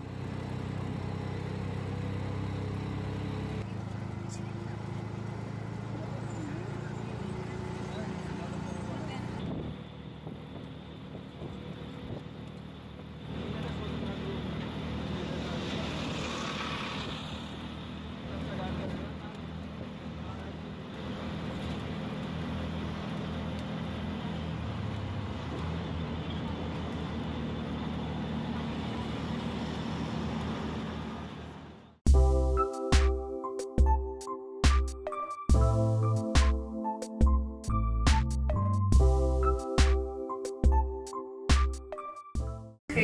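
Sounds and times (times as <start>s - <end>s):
auto-rickshaw engine running: 0.0s - 32.0s
road and wind noise: 0.0s - 32.2s.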